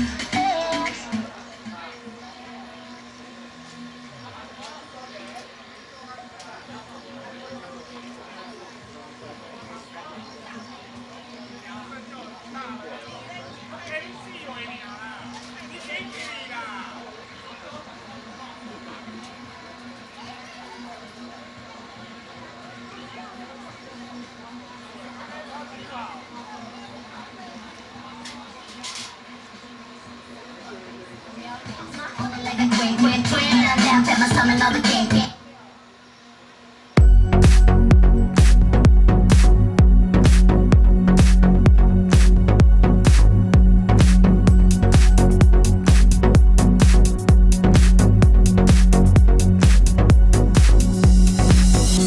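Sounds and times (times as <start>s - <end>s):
people talking: 0.0s - 52.0s
low electrical hum: 35.4s - 52.0s.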